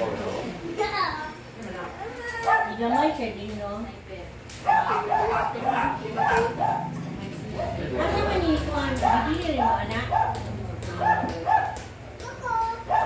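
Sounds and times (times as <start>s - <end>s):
indistinct chatter: 0.0s - 13.0s
dog barking: 2.4s - 2.8s, 4.6s - 7.0s, 7.6s - 7.8s, 9.0s - 11.9s.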